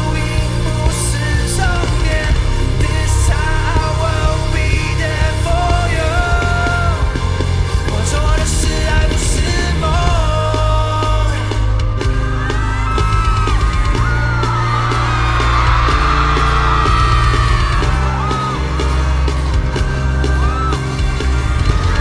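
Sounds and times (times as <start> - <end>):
heavy bass line: 0.0 - 22.0
live concert music: 0.0 - 22.0
voices yelling and whooping: 12.2 - 22.0.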